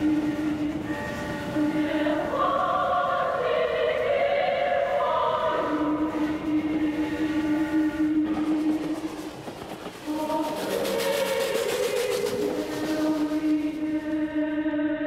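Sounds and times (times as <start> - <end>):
steam locomotive chuffing: 0.0 - 14.3
choral music: 0.0 - 15.0.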